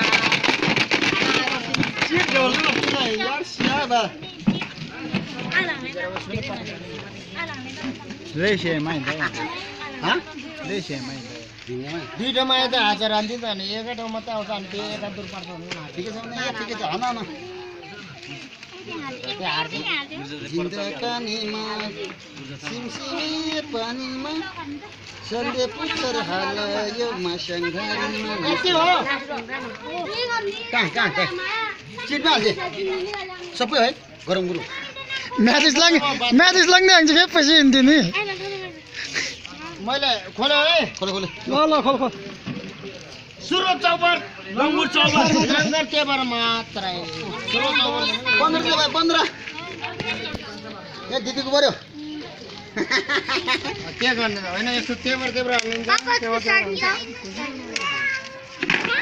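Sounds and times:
children and adults talking: 0.0s - 59.0s.

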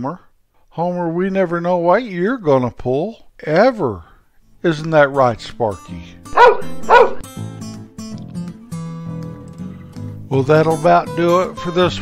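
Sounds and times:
acoustic guitar music: 4.4s - 12.0s
dog barking: 6.3s - 7.2s.

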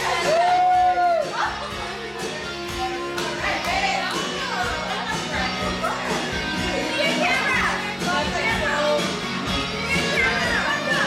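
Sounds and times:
dance music with steady beat: 0.0s - 11.0s.

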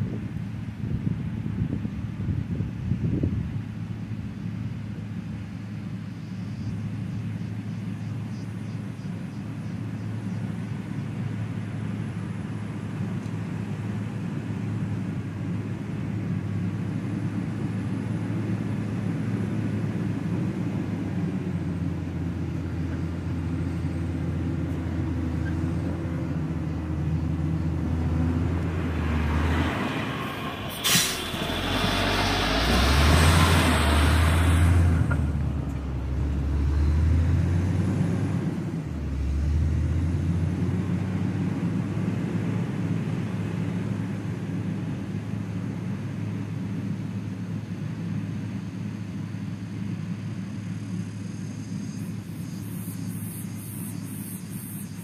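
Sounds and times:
grader diesel engine running: 0.0s - 55.0s.

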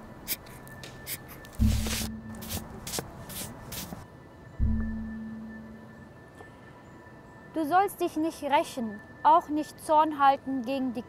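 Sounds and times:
hand brushing book pages: 1.1s - 4.0s
low hum: 1.6s - 3.7s, 4.6s - 6.4s.

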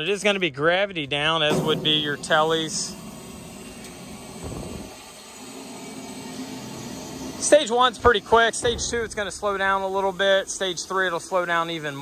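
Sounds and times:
faint hum: 0.0s - 12.0s
hydraulic fluid hissing: 1.5s - 12.0s.

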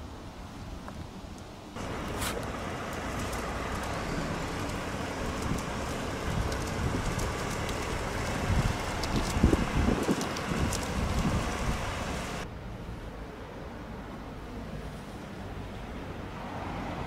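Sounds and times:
street traffic: 0.0s - 17.0s
wind buffeting microphone: 1.8s - 12.5s.

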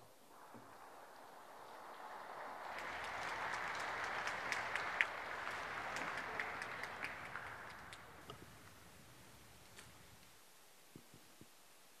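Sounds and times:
audience applauding: 0.3s - 10.1s.

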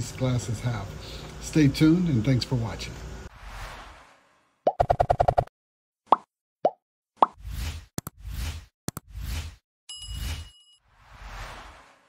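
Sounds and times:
whoosh: 3.3s - 4.6s, 10.9s - 12.0s.

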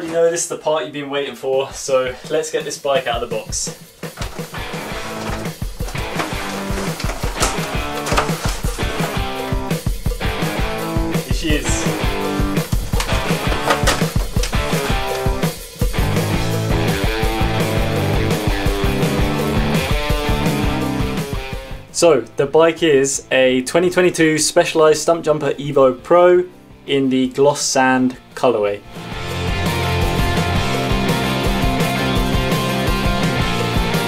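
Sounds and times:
music with steady beat and bass: 1.9s - 21.9s, 28.9s - 34.0s.

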